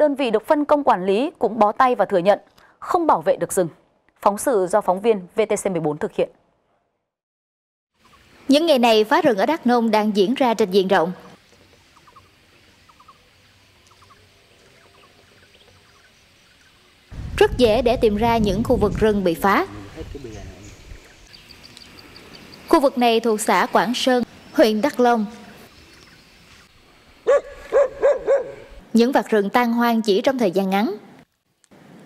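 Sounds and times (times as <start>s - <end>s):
birds chirping: 11.5s - 17.0s, 19.7s - 28.8s
dog barking: 27.2s - 28.8s.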